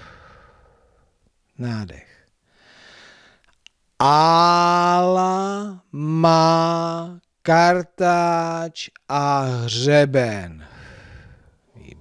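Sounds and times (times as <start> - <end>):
person breathing in deeply: 0.0 - 1.1, 2.5 - 3.5, 10.6 - 12.0.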